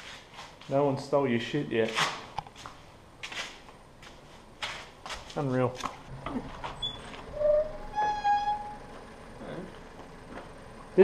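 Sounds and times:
wooden door creaking on hinges: 6.2s - 8.8s.

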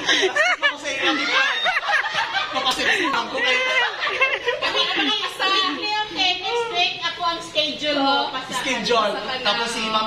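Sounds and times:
women laughing: 0.0s - 6.0s
women talking: 3.0s - 9.4s.

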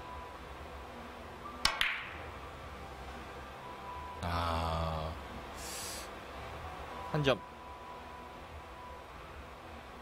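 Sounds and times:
cue tip striking ball: 1.6s - 2.2s.

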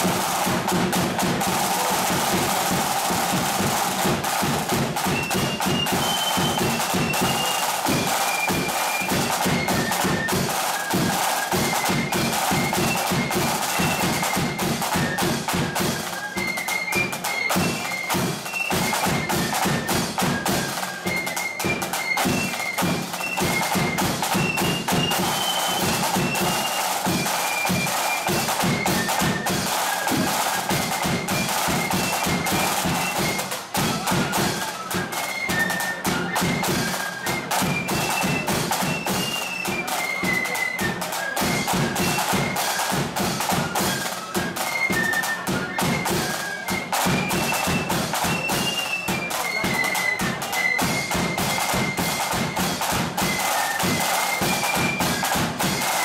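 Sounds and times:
side drum rolls: 0.0s - 34.6s
flute melody: 0.0s - 56.0s.

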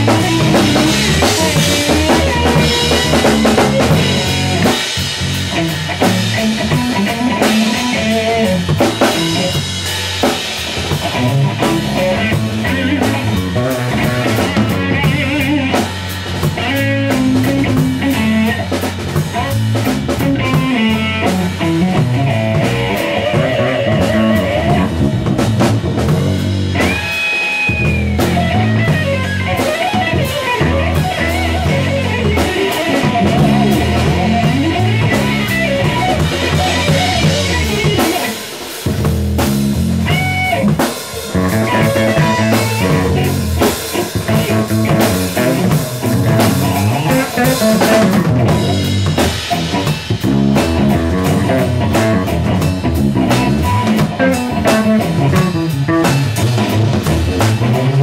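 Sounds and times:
drum kit: 0.0s - 58.0s
electric bass: 0.0s - 58.0s
electric guitar: 0.0s - 58.0s.

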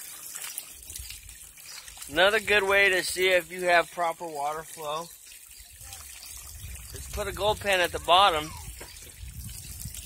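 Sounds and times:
water trickling into a plastic pan: 0.0s - 10.0s.

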